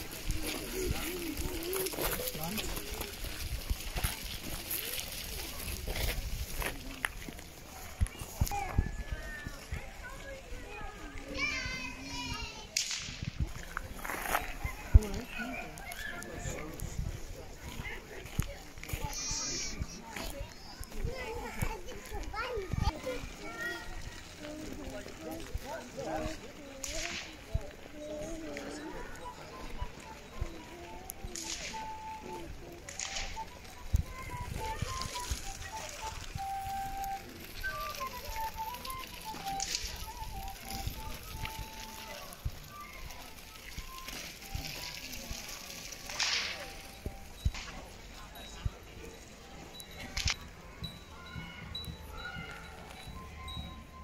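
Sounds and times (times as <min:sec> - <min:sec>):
sharp crack: 0:12.8 - 0:13.2, 0:46.2 - 0:46.6
flute-like melody: 0:14.7 - 0:48.6, 0:49.7 - 0:54.0.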